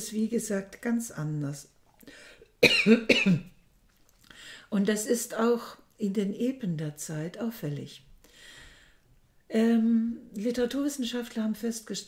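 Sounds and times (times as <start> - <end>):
breath in: 2.0 - 2.5, 4.2 - 4.7, 8.2 - 9.1
woman coughing: 2.6 - 3.5.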